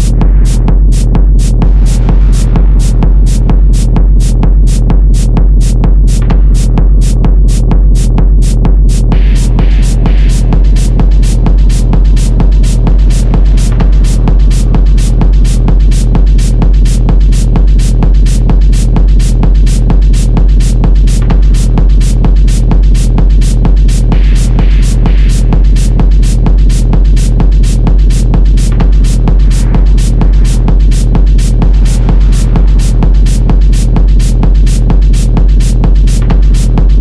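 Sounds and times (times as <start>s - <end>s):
deep bass drone: 0.0s - 37.0s
techno beat: 0.0s - 37.0s.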